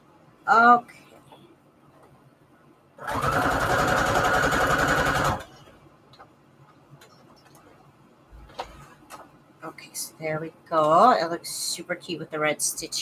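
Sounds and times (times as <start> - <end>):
sewing machine stitching: 3.0 - 5.6.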